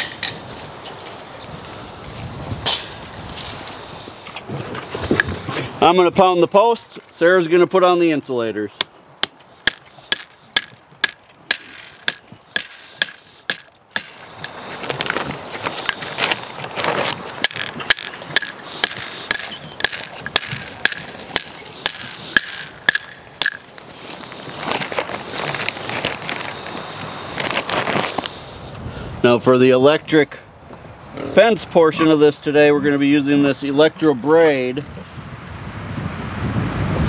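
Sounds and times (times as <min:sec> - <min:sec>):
metal post driver clanks: 0:09.6 - 0:14.6, 0:17.4 - 0:23.7.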